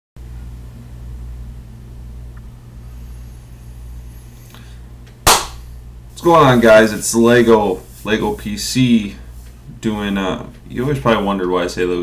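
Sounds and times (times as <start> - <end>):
low room hum: 0.2 - 12.0
hand clap: 5.3 - 5.6.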